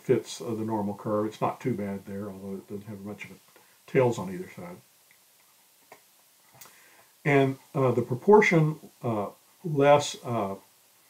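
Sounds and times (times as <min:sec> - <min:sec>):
faint click: 0:05.0 - 0:07.1.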